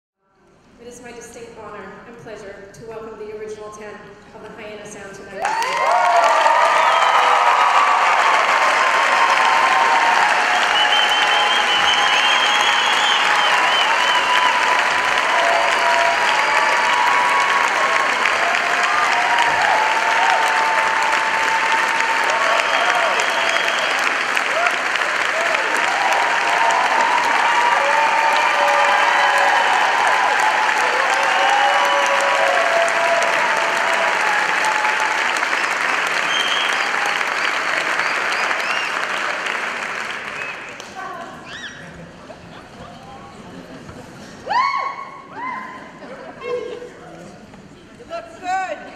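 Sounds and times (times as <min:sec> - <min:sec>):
audience applauding: 0:05.4 - 0:41.9.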